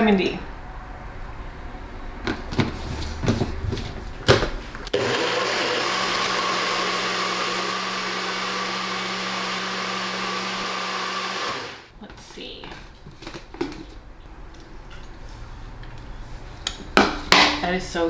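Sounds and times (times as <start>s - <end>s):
blender running: 4.9s - 11.9s.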